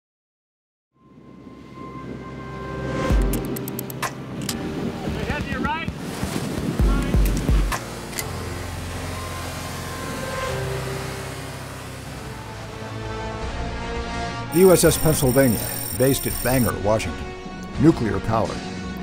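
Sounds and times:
rising electronic chirps: 14.6s - 16.7s
run of sharp clicks: 14.6s - 16.7s.

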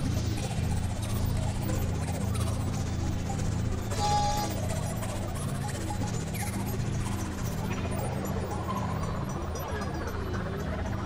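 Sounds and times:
low synthesizer drone: 0.0s - 11.0s.

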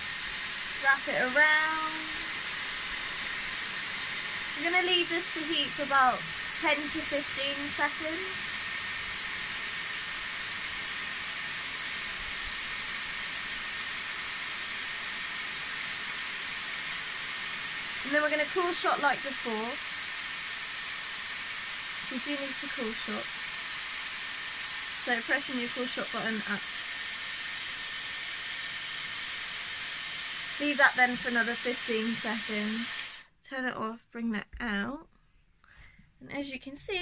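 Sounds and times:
hair styler air rush with whine: 0.0s - 33.3s.

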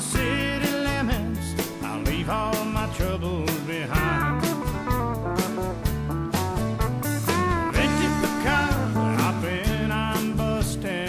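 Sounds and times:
country band music: 0.0s - 11.0s
sliding guitar lead melody: 0.0s - 11.0s.

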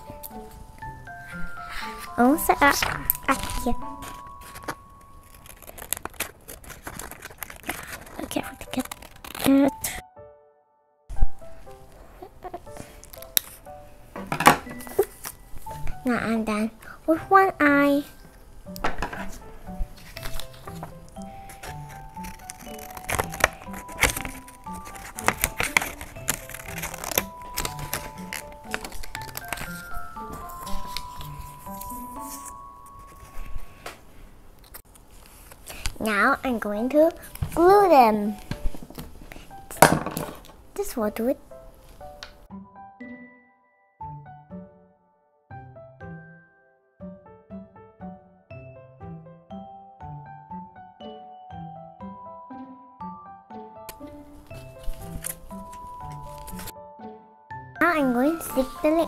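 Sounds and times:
paper rustling and crinkling: 0.0s - 10.0s, 19.0s - 33.9s, 34.6s - 40.6s, 54.4s - 56.7s, 57.8s - 59.0s
background music: 0.0s - 33.9s, 36.0s - 59.0s
child's voice: 1.7s - 4.0s, 8.2s - 9.9s, 16.0s - 18.2s, 36.0s - 38.4s, 40.8s - 41.4s, 57.8s - 59.0s
scissors snipping paper: 1.9s - 10.0s, 12.6s - 13.7s, 19.2s - 33.4s, 53.9s - 56.7s.

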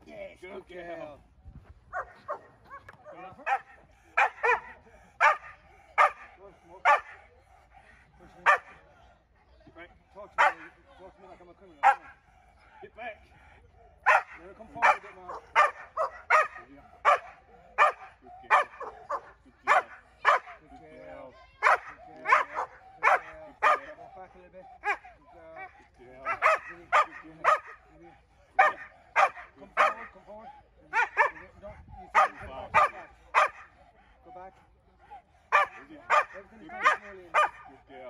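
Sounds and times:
dog barking: 1.9s - 7.2s, 8.4s - 8.8s, 10.4s - 10.8s, 11.8s - 12.2s, 14.0s - 20.6s, 21.6s - 24.1s, 24.8s - 27.8s, 28.5s - 30.2s, 30.9s - 33.8s, 35.5s - 37.8s.

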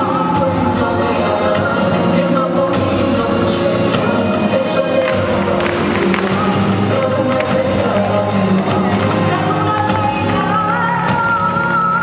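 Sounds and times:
flamenco music: 0.0s - 12.0s.

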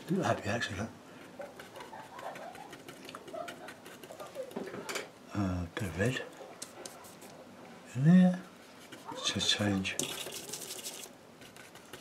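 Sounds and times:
paintbrush bristles rustling: 8.6s - 12.0s.

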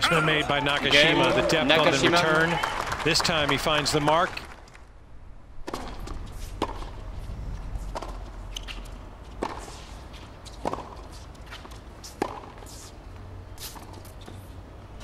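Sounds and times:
stadium background: 0.0s - 10.4s
tennis ball hit by racket: 5.6s - 7.0s, 7.8s - 12.8s.

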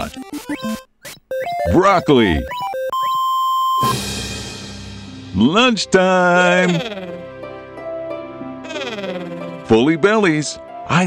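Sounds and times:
electronic beep: 0.0s - 4.0s.

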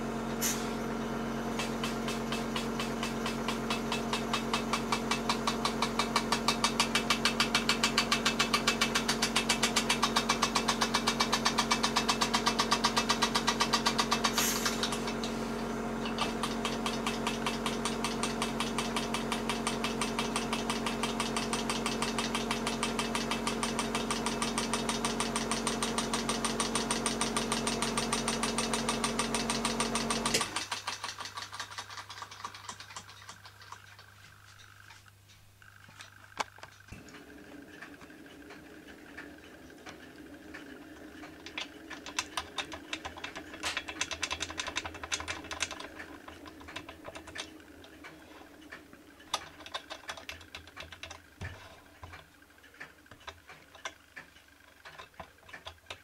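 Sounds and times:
toy engine exhaust beats: 0.0s - 56.0s
steady hum: 33.7s - 56.0s.

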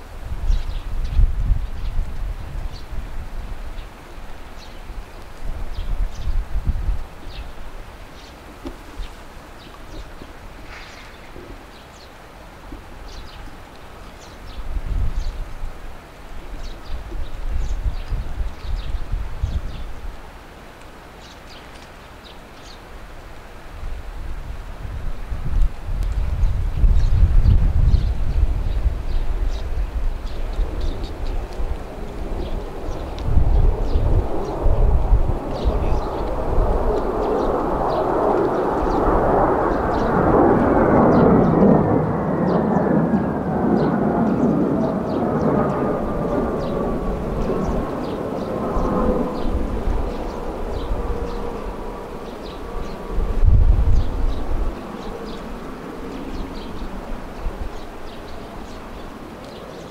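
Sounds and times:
wind buffeting microphone: 0.0s - 20.4s, 23.6s - 59.9s
jet engines roaring: 28.1s - 59.9s
jet whine falling in pitch: 32.0s - 56.3s.

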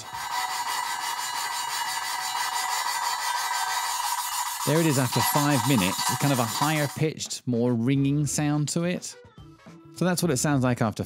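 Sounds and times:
valve grinding against seat: 0.0s - 7.0s.

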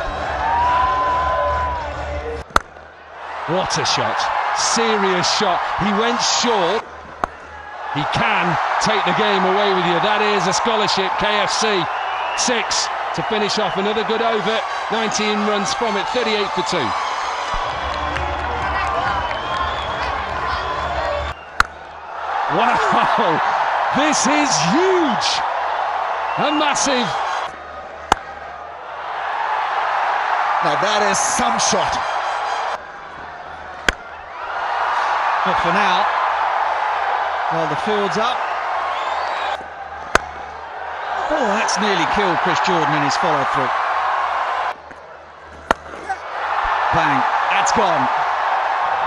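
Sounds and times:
outdoor ground ambience: 0.0s - 49.0s
stadium crowd noise: 0.0s - 49.0s
cricket bat striking ball: 21.6s - 21.8s, 28.0s - 28.4s, 33.8s - 34.1s, 40.1s - 40.4s, 45.6s - 46.2s.

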